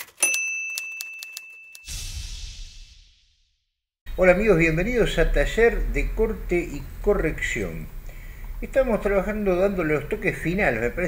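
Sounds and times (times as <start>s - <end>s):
typewriter-like clicks: 0.0s - 1.8s
bright bell ding: 0.2s - 1.9s.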